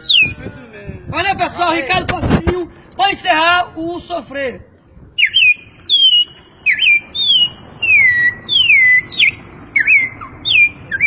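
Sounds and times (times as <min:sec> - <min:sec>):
man whistling birdsong imitation: 0:00.0 - 0:00.4, 0:05.2 - 0:11.0.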